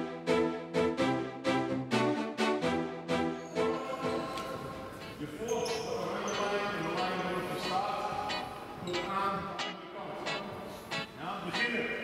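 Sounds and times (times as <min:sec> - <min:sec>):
voices in a hall: 0:03.3 - 0:12.0
basketballs bouncing on hall floor: 0:04.2 - 0:07.0.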